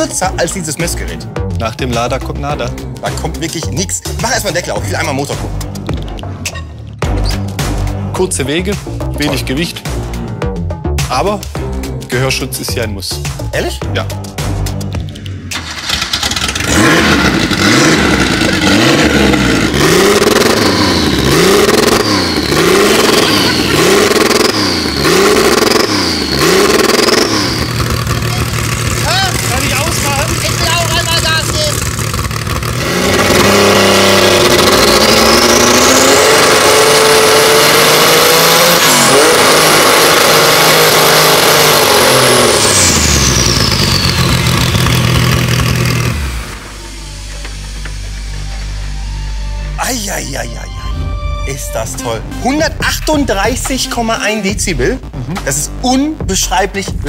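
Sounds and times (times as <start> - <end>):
turbocharged engine revving: 13.2 - 50.7.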